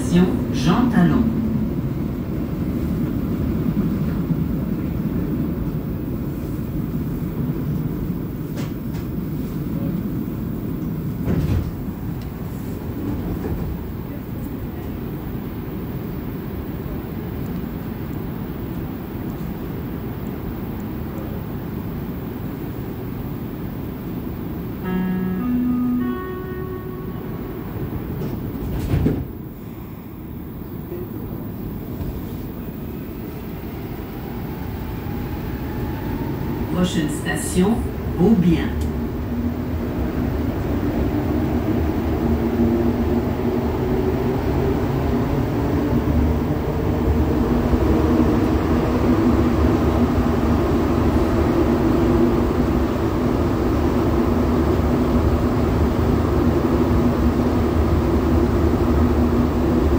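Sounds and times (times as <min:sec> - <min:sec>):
train running rumble: 0:00.0 - 0:59.9
rising two-note electronic tone: 0:24.8 - 0:27.8.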